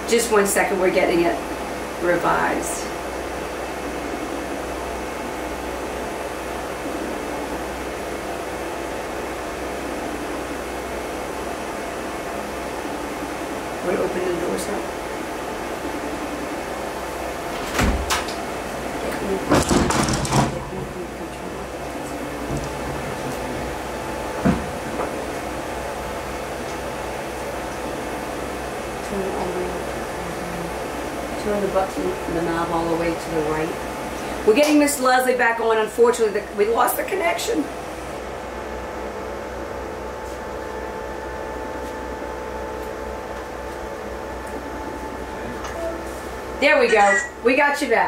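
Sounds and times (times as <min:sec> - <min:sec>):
room hum with faint tone: 0:00.0 - 0:48.0
faint voices: 0:20.5 - 0:23.6.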